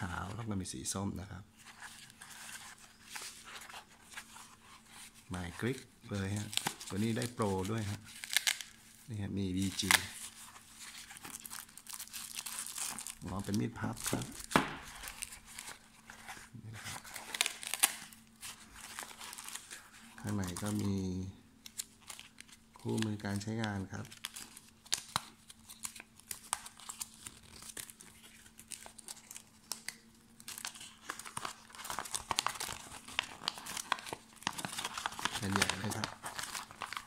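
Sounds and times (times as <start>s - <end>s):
paper leaflet rustling: 21.7s - 37.0s.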